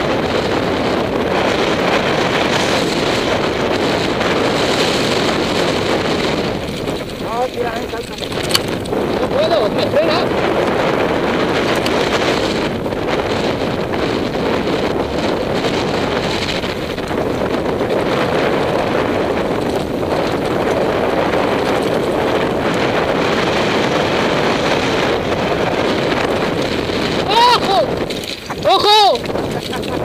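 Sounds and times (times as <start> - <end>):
bike rolling and rattling: 0.0 - 30.0
wind on microphone: 0.0 - 30.0
person shouting: 27.2 - 28.0, 28.6 - 29.2.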